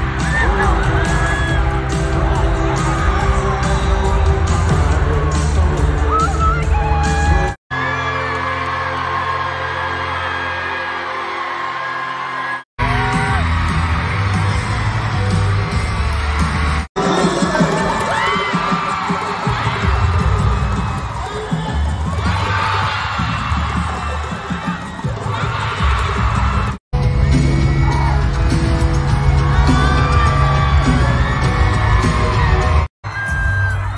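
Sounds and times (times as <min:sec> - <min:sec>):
fans screaming: 0:00.0 - 0:33.9.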